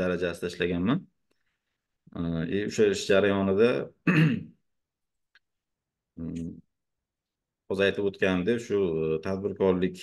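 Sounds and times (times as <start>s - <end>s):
man clearing throat: 4.0s - 4.6s.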